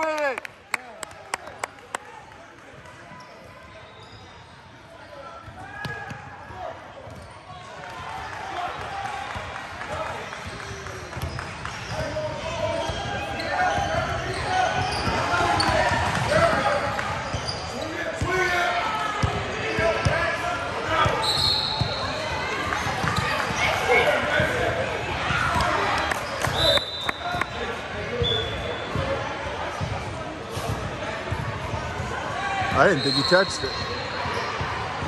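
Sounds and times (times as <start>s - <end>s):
high-pitched shoe squeals: 3.2s - 4.6s, 21.2s - 22.2s, 28.2s - 28.8s, 32.8s - 34.6s.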